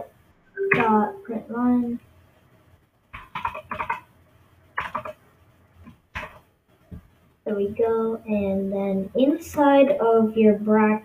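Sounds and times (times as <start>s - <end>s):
computer keyboard typing: 0.6s - 1.2s, 3.2s - 4.1s, 4.8s - 5.2s, 6.2s - 6.4s.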